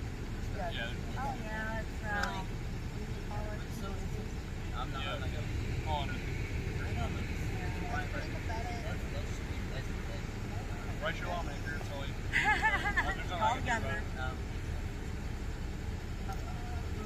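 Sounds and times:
low rumble: 0:00.0 - 0:13.4
distant people talking: 0:00.3 - 0:17.0.

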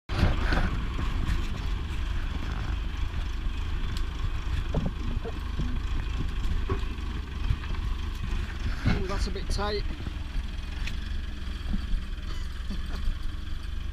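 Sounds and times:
diesel engine running under load: 0:00.1 - 0:13.9.

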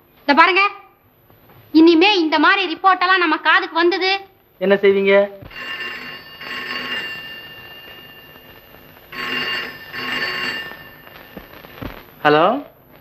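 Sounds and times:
telephone bell ringing: 0:05.5 - 0:11.8.

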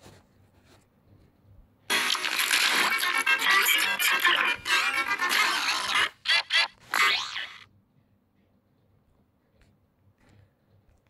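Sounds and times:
busy music: 0:01.9 - 0:05.5
cartoonish falling tone: 0:01.9 - 0:07.7.

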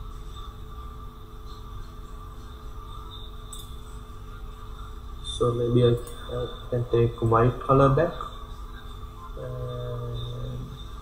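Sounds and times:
man humming low note: 0:09.4 - 0:10.8.

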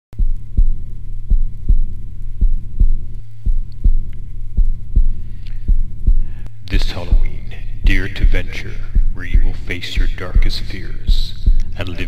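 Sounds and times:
heartbeat double thump: 0:00.2 - 0:06.4, 0:07.1 - 0:11.8
steady low drone: 0:00.2 - 0:12.0.

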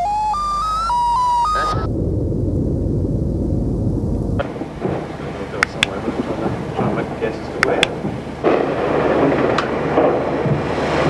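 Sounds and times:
electronic tones: 0:00.0 - 0:06.1
dense low rumble: 0:01.2 - 0:10.8
rough crackling background: 0:01.5 - 0:11.0
sharp cracks: 0:01.6 - 0:11.0.

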